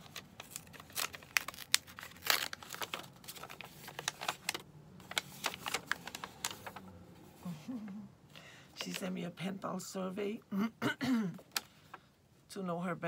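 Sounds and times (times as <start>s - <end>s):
paper crinkling and crackling: 0.0s - 7.0s, 8.8s - 9.2s.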